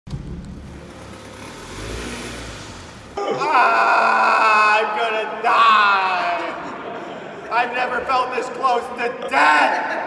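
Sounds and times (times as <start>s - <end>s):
car engine running: 0.1s - 3.2s.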